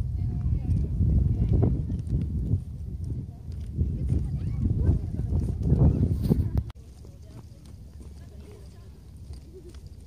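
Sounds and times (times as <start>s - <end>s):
footsteps on paved path: 0.0s - 10.0s
low uneven microphone rumble: 0.0s - 10.0s.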